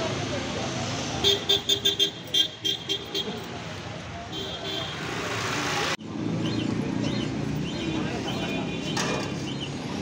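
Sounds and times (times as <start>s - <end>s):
traffic rushing: 0.0s - 10.0s
murmur of crowd talking: 3.0s - 10.0s.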